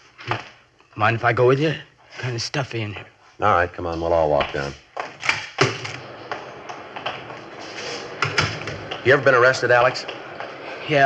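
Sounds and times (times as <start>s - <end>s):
footsteps on hard floor: 6.0s - 9.1s.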